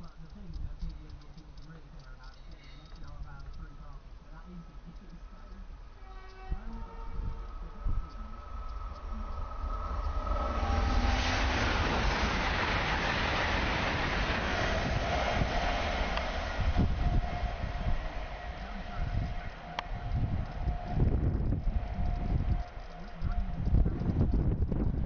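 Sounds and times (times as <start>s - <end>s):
train passing at speed: 4.9s - 25.0s.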